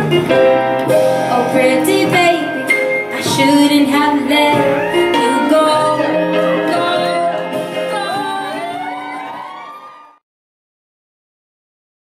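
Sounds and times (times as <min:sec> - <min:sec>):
music: 0:00.0 - 0:10.2
audience whooping and cheering: 0:04.4 - 0:06.9, 0:08.0 - 0:10.2.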